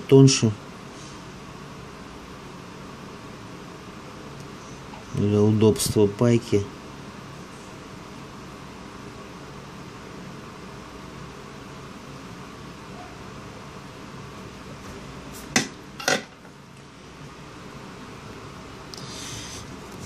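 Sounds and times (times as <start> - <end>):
fan-like hum: 0.0 - 20.0
hard objects knocking on workbench: 15.5 - 16.3.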